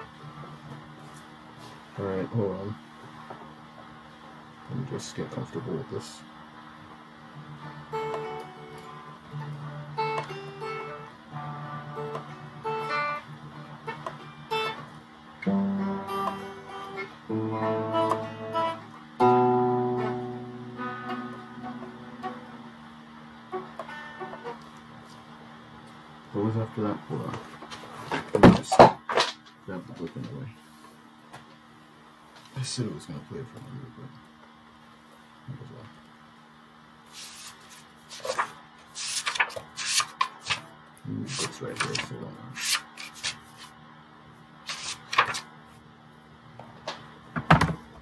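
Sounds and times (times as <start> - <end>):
electric guitar melody: 7.3 - 25.0.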